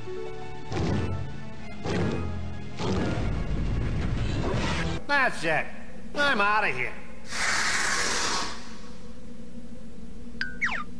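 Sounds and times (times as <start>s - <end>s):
rushing hissing sound effect: 7.3s - 9.0s.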